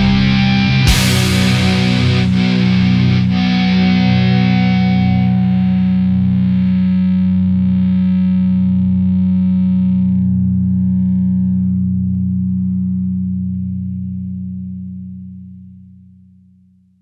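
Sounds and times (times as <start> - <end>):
distorted electric guitar chord: 0.0 - 14.7.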